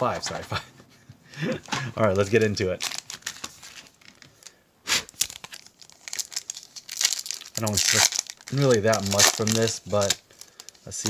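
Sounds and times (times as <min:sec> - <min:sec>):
foil wrapper crinkling: 0:02.0 - 0:11.0
foil wrapper ripping: 0:02.8 - 0:11.0.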